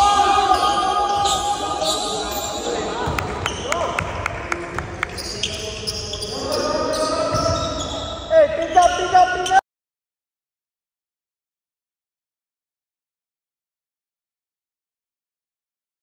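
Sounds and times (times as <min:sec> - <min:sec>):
players shouting: 0:00.0 - 0:04.1, 0:04.8 - 0:09.6
sneakers squeaking: 0:00.0 - 0:09.6.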